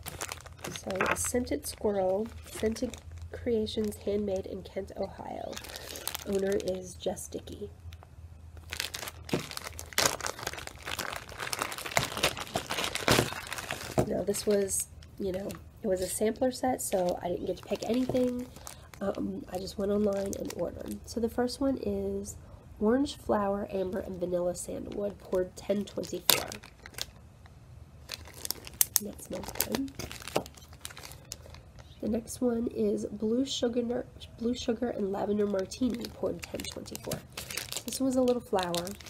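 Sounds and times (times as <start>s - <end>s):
plastic bag crinkling: 0.0s - 8.0s, 8.6s - 21.1s, 24.8s - 27.2s, 28.0s - 32.3s, 34.5s - 39.0s.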